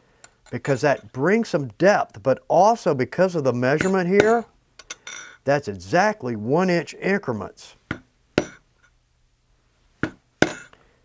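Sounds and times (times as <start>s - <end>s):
mallet striking stamping tool: 7.9s - 8.6s, 10.0s - 10.7s.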